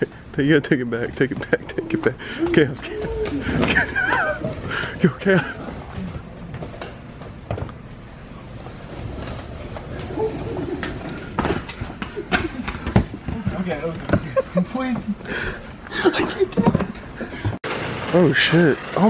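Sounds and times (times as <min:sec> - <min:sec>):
wheeled trash bin rolling: 0:00.5 - 0:07.7, 0:08.4 - 0:19.0
people laughing and talking: 0:00.7 - 0:06.3, 0:09.9 - 0:17.6.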